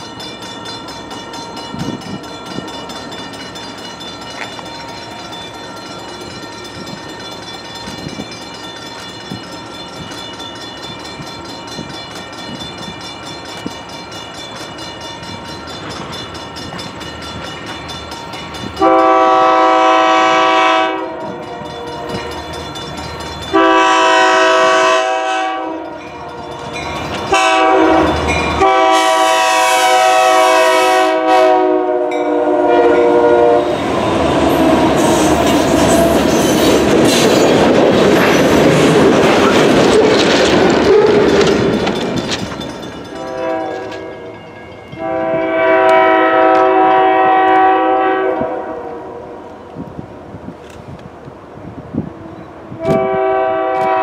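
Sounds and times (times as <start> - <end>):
locomotive engines roaring: 0.0 - 54.0
train wheels on rail: 0.0 - 54.0
locomotive air horn blasts: 18.8 - 22.2, 23.5 - 26.5, 27.3 - 33.8, 43.2 - 44.3, 44.9 - 49.4, 52.8 - 54.0.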